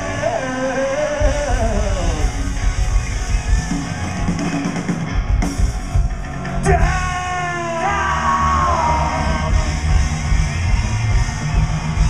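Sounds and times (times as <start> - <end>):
rock band playing live: 0.0 - 12.0
long yelled vocal note: 7.4 - 9.7.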